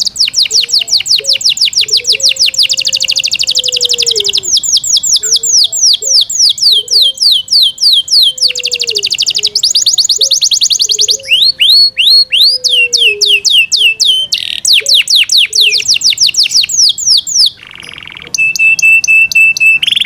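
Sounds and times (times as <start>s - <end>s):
canary singing: 0.0s - 20.0s.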